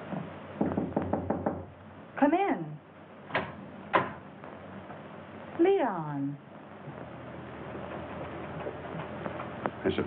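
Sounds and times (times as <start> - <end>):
quick knocking on door: 0.6 - 1.7.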